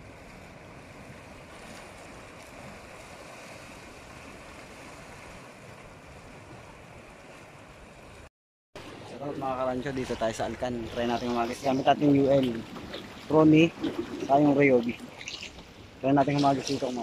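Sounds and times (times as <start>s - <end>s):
waves washing against rocks: 0.0s - 8.3s, 8.9s - 17.0s.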